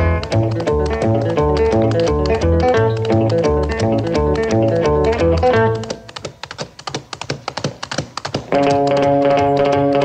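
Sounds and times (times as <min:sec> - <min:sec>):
plucked guitar and bass music: 0:00.0 - 0:06.0, 0:08.5 - 0:10.0
light tapping percussion: 0:00.0 - 0:10.0.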